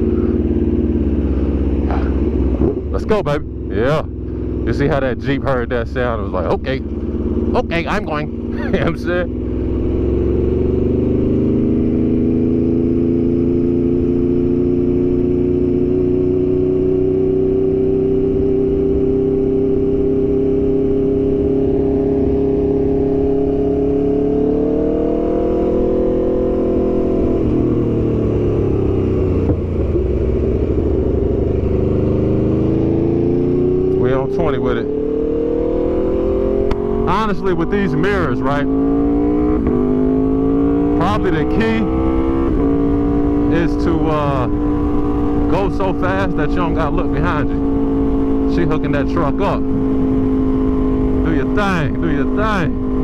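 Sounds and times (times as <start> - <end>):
motorcycle engine running: 0.0 - 53.0.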